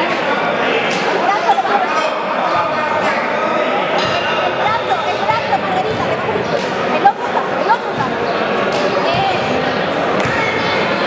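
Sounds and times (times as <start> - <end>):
voices shouting and talking: 0.0 - 11.0.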